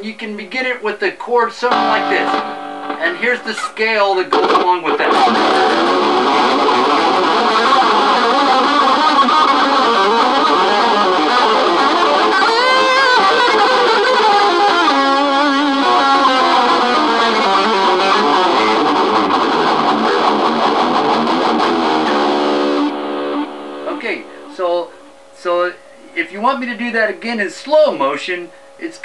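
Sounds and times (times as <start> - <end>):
electric guitar fast run: 4.4 - 24.0.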